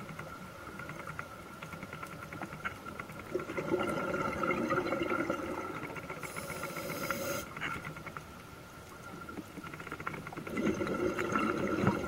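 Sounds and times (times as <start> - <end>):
crackle of small ticks: 0.0 - 3.7, 7.4 - 10.9
bubbles burbling and hissing: 3.3 - 7.6, 10.3 - 12.0.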